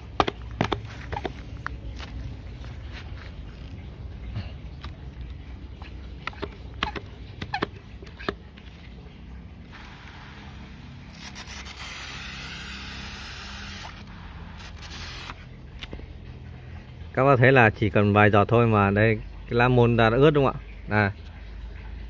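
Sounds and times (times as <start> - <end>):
sprayer handling clicks and knocks: 0.0 - 1.4, 6.2 - 8.4.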